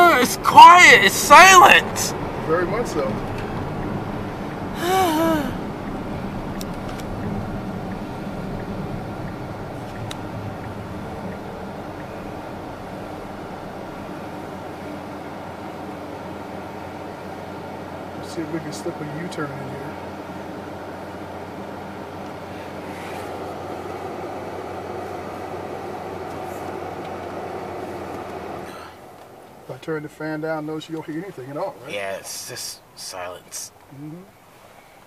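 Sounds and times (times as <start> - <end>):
climate fan blowing: 0.0 - 33.0
tyre and road hum: 0.0 - 35.0.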